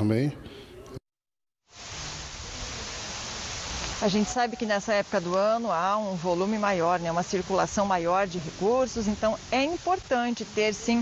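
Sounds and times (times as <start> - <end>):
outdoor background hiss: 1.7 - 11.0.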